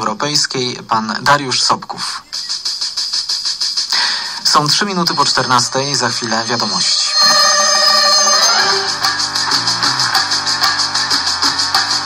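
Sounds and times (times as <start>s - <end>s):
rhythmic music: 1.5s - 12.0s
radio jingle chord: 4.0s - 9.7s.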